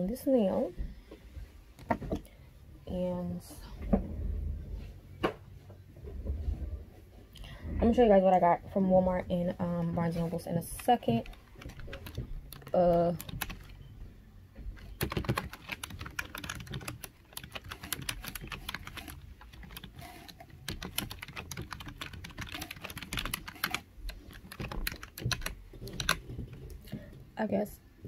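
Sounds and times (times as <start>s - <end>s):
computer keyboard typing: 10.7s - 13.8s, 14.8s - 26.7s.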